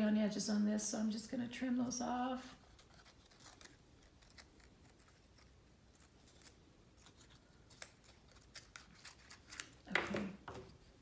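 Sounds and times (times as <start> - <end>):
scissors snipping paper: 2.6 - 9.9.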